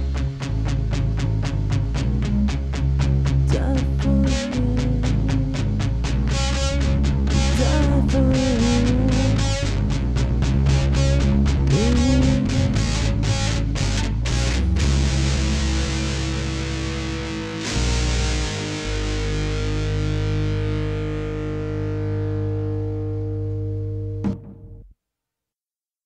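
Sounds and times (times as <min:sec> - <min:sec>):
guitar chord ringing: 0:04.1 - 0:24.8
rock band playing: 0:05.6 - 0:22.0.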